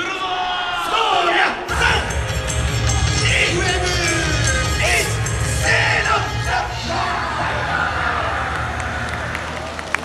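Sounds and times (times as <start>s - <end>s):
voices shouting a drawn-out call: 3.1s - 10.0s.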